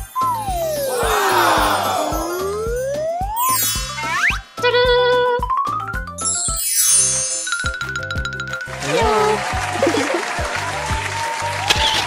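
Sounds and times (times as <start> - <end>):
upbeat children's music: 0.0 - 12.0
twinkling sparkle sweep: 0.2 - 4.5, 6.2 - 8.2.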